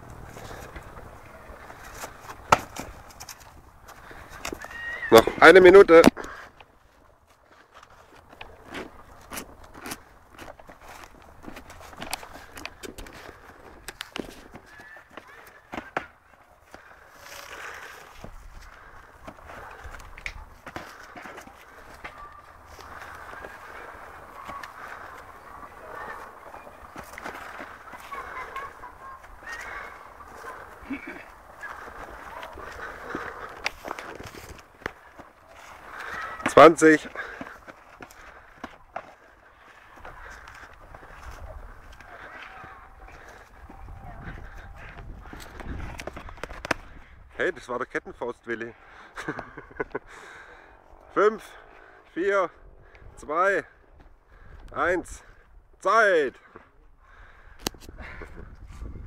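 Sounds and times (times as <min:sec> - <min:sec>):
faint voices: 0:10.8 - 0:47.3.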